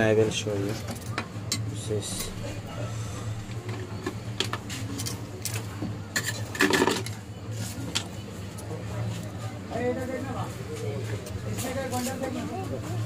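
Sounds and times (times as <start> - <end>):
steady low hum: 1.6 - 6.4.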